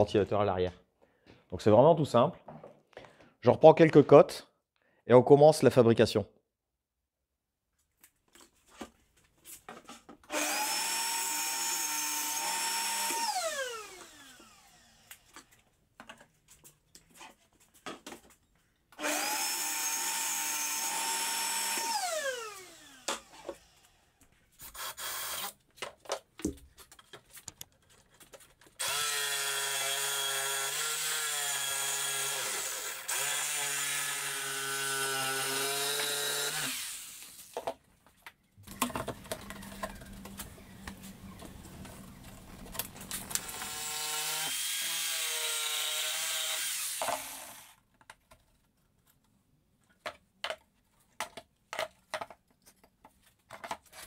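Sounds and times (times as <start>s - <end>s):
lower-pitched power tool running: 10.3s - 15.2s, 19.0s - 24.0s, 28.8s - 37.5s, 43.1s - 47.7s
table saw whining: 10.3s - 15.3s, 19.0s - 24.1s, 28.8s - 37.6s, 38.8s - 47.8s.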